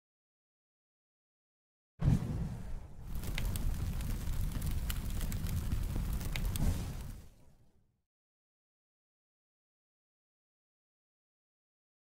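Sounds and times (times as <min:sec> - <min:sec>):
low rumble with sharp crackles: 0:02.0 - 0:07.7.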